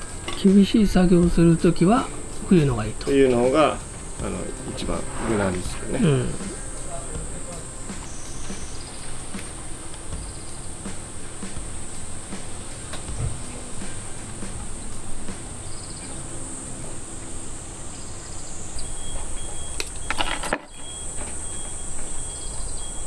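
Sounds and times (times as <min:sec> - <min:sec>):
insects droning: 0:00.0 - 0:23.0.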